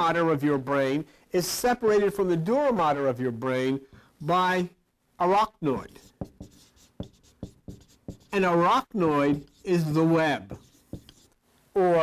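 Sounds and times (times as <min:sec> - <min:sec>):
faint pen scratching: 0:05.8 - 0:11.4
pen tapping on paper: 0:06.0 - 0:08.3, 0:10.5 - 0:11.3.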